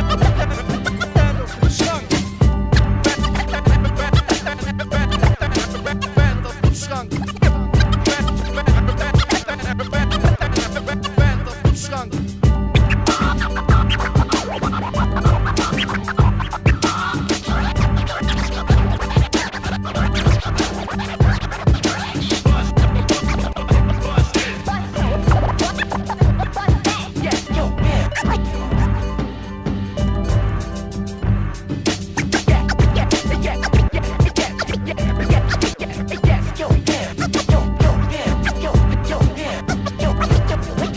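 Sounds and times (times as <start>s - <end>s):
turntable scratching: 0.0s - 29.4s, 30.2s - 40.9s
hip-hop beat: 0.0s - 40.9s.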